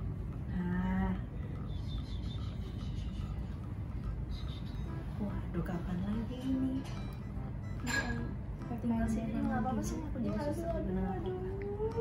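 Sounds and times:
woman humming: 10.2s - 12.0s.

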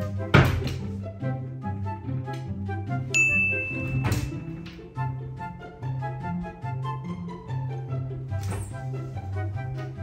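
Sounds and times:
light instrumental music: 0.0s - 10.0s
high clear ding: 3.2s - 4.4s.

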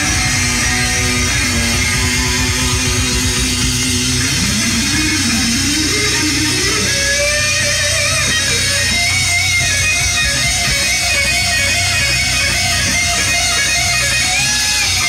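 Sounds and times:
electric guitar lead with vibrato: 0.0s - 15.0s
rock band playing live: 0.0s - 15.0s.

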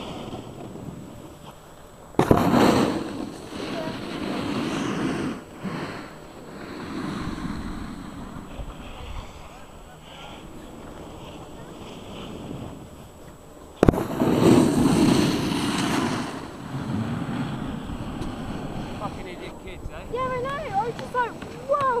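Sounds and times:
snowboard scraping across snow: 0.0s - 22.0s.

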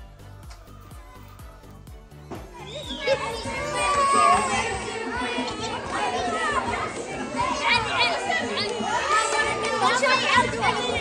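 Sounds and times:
children chattering and shouting: 0.0s - 11.0s
children squealing: 2.5s - 11.0s.

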